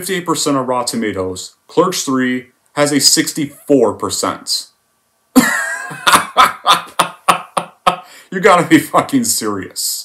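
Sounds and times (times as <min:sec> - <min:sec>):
man laughing: 0:05.4 - 0:08.2.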